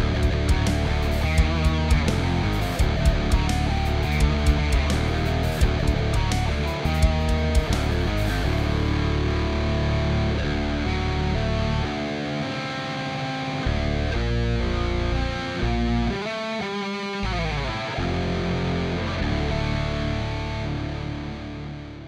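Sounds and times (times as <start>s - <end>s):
distorted electric guitar riffs: 0.0s - 22.0s.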